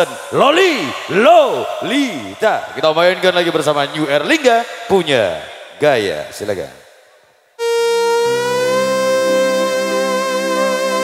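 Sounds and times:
electronic keyboard lead note: 0:07.6 - 0:11.0
sustained keyboard chord: 0:07.6 - 0:11.0.

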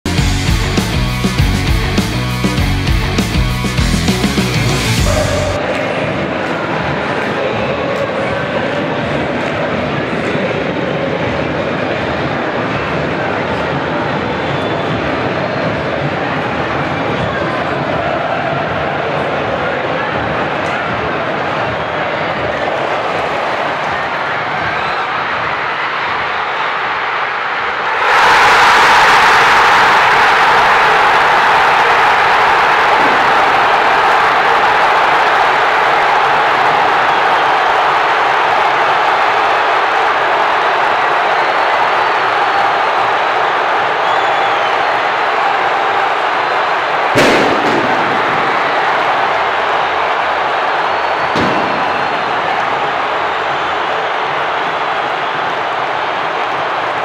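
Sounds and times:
stadium crowd cheering: 0:00.0 - 0:57.0
sharp bang: 0:47.2 - 0:48.4.

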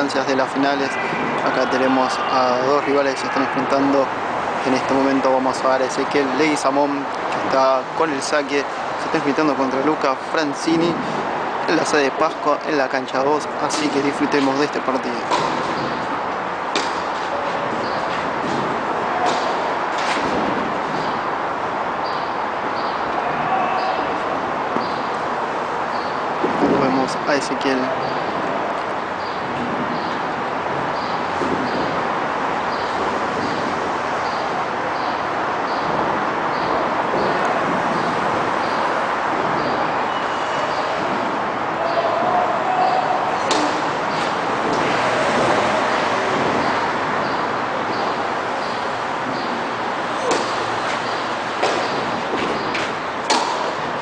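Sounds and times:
indoor tennis hall noise: 0:00.0 - 0:54.0
steady noisy background: 0:00.0 - 0:54.0
tennis ball struck by racket: 0:16.7 - 0:17.2, 0:50.2 - 0:50.6, 0:51.6 - 0:52.6, 0:53.2 - 0:53.8
racket striking tennis ball: 0:16.7 - 0:17.3, 0:43.4 - 0:44.8, 0:50.1 - 0:53.8
ball bouncing on clay court: 0:50.2 - 0:50.6.

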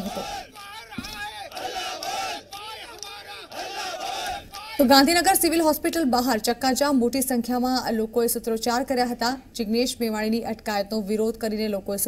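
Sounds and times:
crowd shouting slogans: 0:00.0 - 0:04.8.

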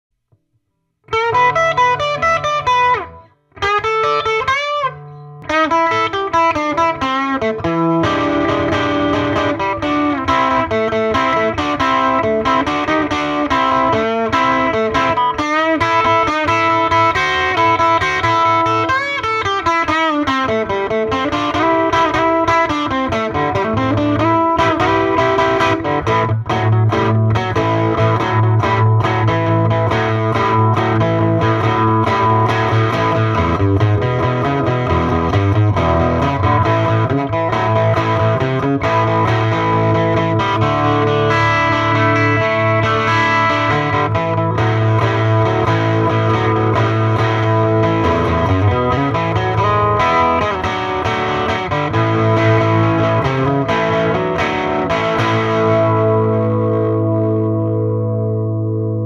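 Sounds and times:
electric guitar lead lines: 0:00.3 - 0:59.0
electric guitar riffing: 0:01.1 - 0:59.0.

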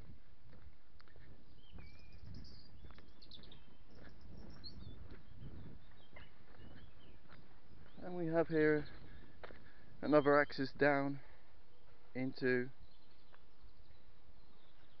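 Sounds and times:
walking rumble on camera: 0:00.0 - 0:12.2
small birds chirping: 0:00.0 - 0:15.0.

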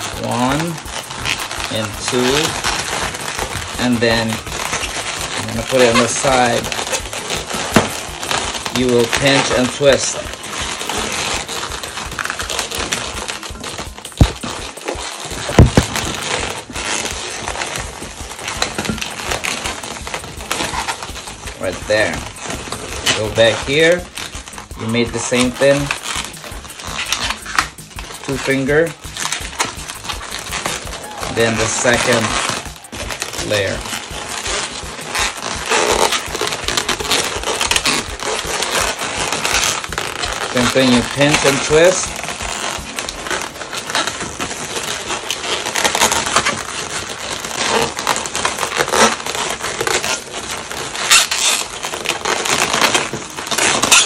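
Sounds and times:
balloons rubbing and squeaking: 0:00.0 - 0:54.0.

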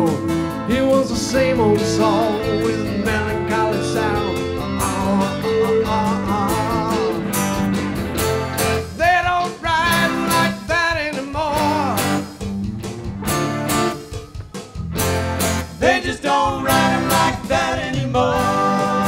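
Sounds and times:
lead guitar swooping and wavering: 0:00.0 - 0:08.9
rock band playing: 0:00.0 - 0:19.0.

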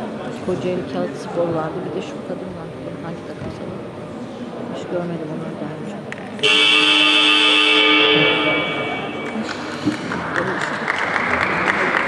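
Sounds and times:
scoreboard buzzer tone: 0:06.4 - 0:09.4.

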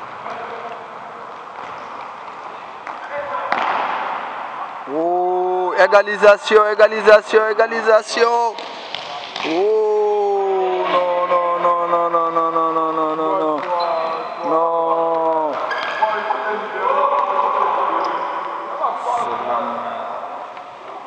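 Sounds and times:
man shouting: 0:04.9 - 0:08.6, 0:09.5 - 0:13.6.

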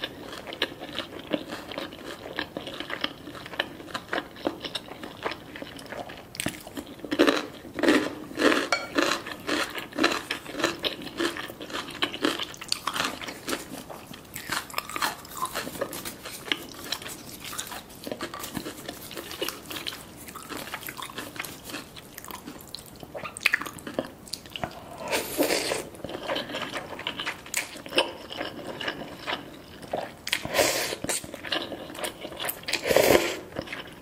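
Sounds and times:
chewing: 0:00.0 - 0:34.0
slurping noodles: 0:24.8 - 0:26.0, 0:30.4 - 0:31.3, 0:32.7 - 0:33.6.

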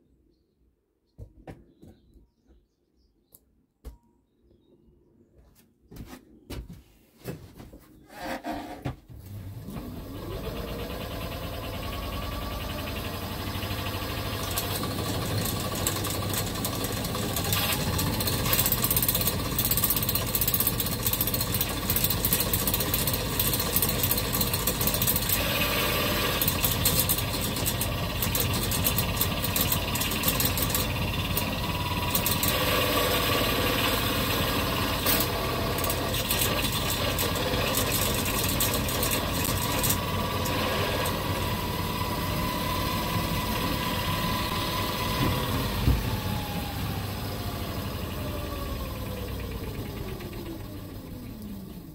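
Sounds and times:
motor whirring and rattling: 0:09.3 - 0:51.6.

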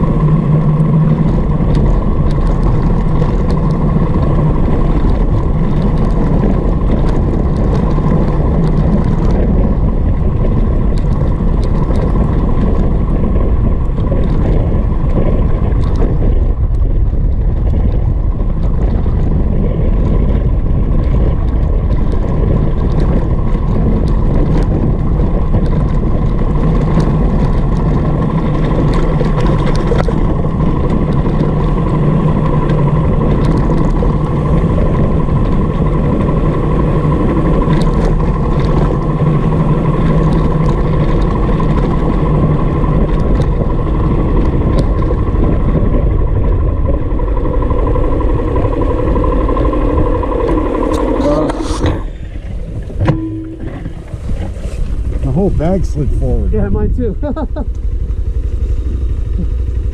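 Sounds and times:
motorcycle engine running: 0:00.0 - 0:59.9
road and wind noise: 0:00.0 - 0:59.9.

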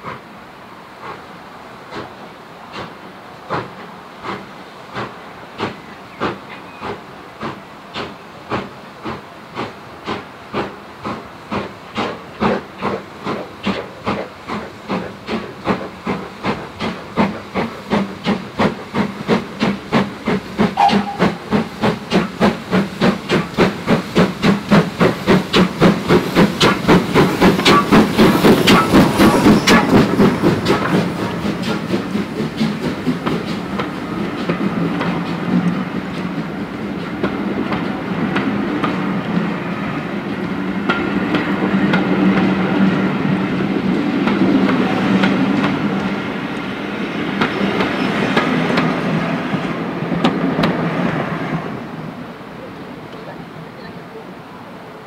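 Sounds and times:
steam locomotive exhaust beats: 0:00.0 - 0:54.0
train coaches rumbling: 0:00.0 - 0:55.0.

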